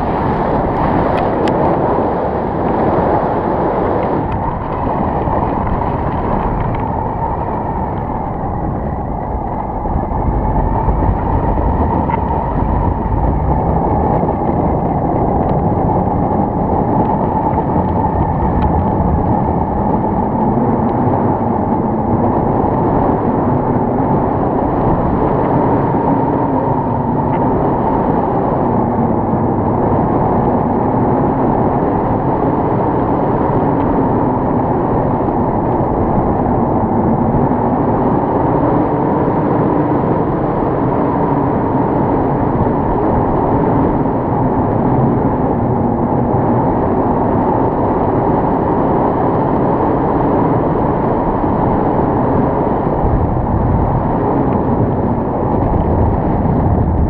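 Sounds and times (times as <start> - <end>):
wind rushing over microphone: 0.0 - 57.0.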